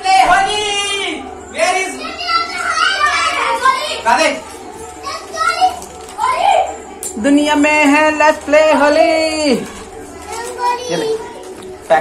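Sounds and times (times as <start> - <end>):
children talking and calling out: 0.0 - 7.1, 9.1 - 12.0.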